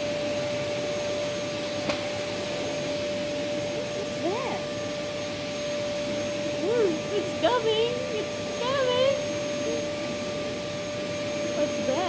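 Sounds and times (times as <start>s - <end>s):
vacuum cleaner running: 0.0s - 12.0s
vacuum head pushed over rug: 0.0s - 12.0s.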